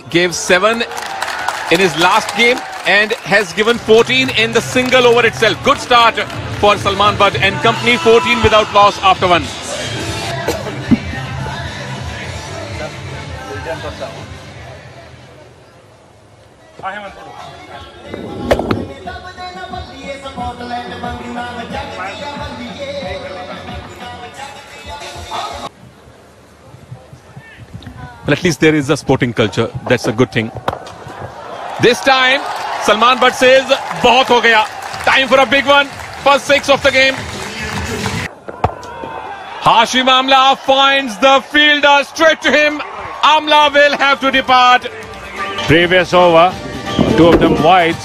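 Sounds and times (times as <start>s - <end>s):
stadium crowd cheering: 0.0s - 9.4s, 29.0s - 46.4s
background music: 1.8s - 15.5s, 17.3s - 25.8s, 43.2s - 48.0s
cricket bat striking ball: 18.4s - 18.9s.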